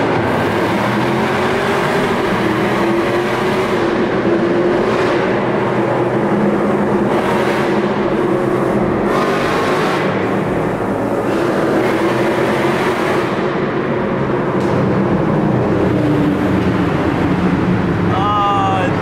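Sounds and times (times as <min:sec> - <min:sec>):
car engine at highway speed: 0:00.0 - 0:19.0.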